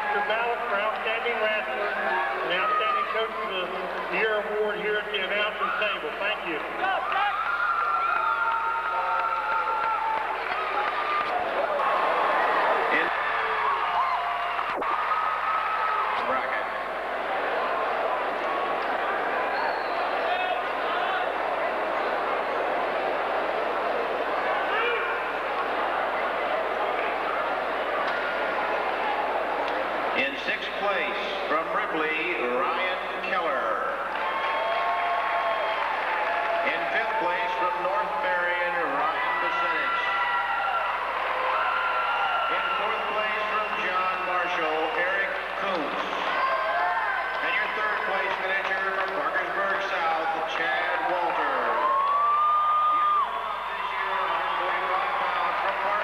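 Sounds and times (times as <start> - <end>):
echoing announcer voice: 0.0 - 7.5, 24.5 - 25.4, 30.1 - 34.2, 36.4 - 40.3, 42.3 - 52.2, 52.9 - 56.0
crowd chatter: 0.0 - 56.0
audience applauding: 6.5 - 24.5, 34.0 - 56.0.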